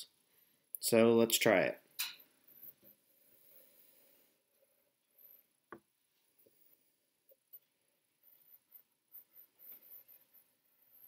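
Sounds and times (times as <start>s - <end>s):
compass scratchy ticking on paper: 7.3s - 11.0s.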